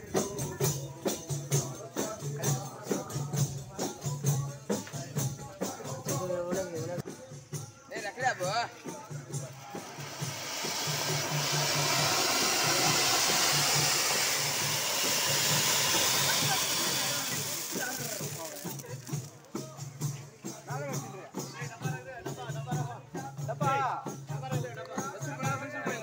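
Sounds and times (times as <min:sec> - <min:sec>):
voices: 0:00.0 - 0:23.7
jingling percussion: 0:00.0 - 0:26.0
procession drum beat: 0:00.0 - 0:26.0
fountain fireworks hissing: 0:08.5 - 0:20.6.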